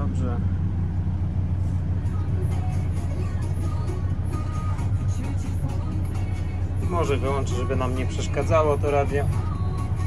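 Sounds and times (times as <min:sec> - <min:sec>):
roller engine idling: 0:00.0 - 0:10.0
disco music on radio: 0:02.2 - 0:10.0.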